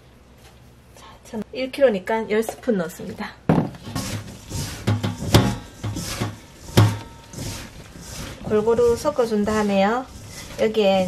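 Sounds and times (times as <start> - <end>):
hands kneading dough in a bowl: 3.8 - 11.0.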